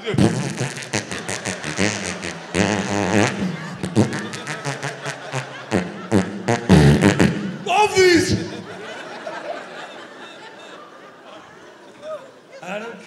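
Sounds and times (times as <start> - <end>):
man blowing raspberry noises: 0.0 - 8.8.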